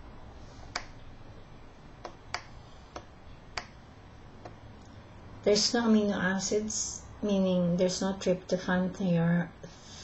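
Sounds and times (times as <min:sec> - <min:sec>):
faint low room hum: 0:00.0 - 0:10.0
sharp short clicks: 0:00.7 - 0:01.0.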